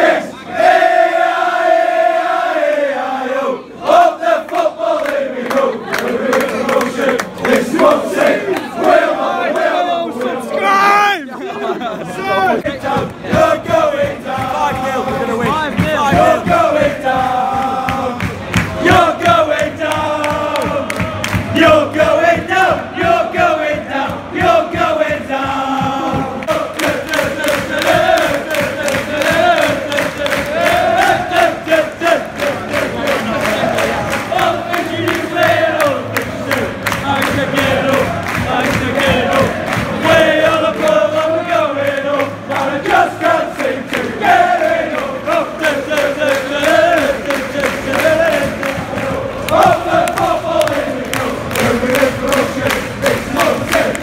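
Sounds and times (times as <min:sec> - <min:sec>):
crowd singing a chant: 0:00.0 - 0:54.0
rhythmic hand-clapping: 0:03.9 - 0:10.4, 0:12.6 - 0:54.0.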